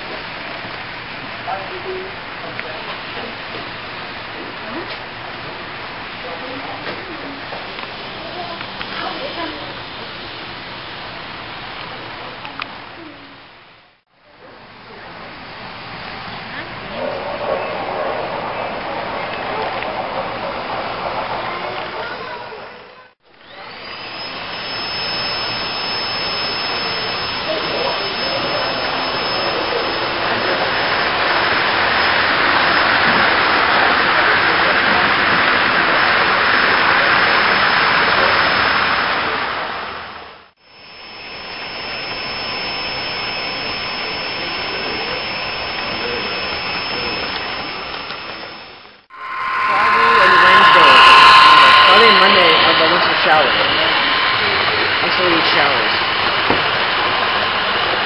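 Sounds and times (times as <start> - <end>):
model train motors whirring: 23.3 - 35.2, 40.6 - 49.0.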